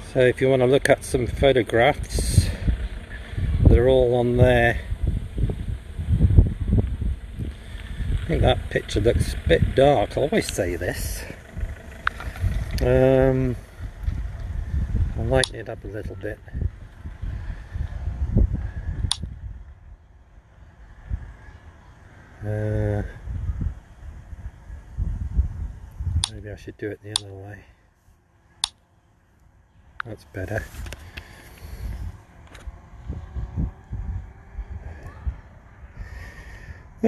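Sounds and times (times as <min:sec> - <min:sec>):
faint steady hum: 0:00.0 - 0:37.0
low irregular rumbling: 0:00.0 - 0:37.0.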